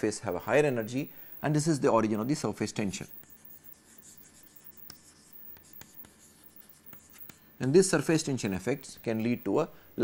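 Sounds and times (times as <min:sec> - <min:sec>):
chalk scratching on chalkboard: 0:02.3 - 0:09.6
chalk tapping on board: 0:03.1 - 0:09.0.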